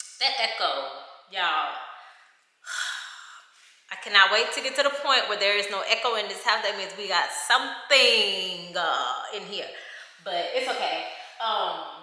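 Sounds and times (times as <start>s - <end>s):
woman speaking in echoing room: 0.0s - 12.0s.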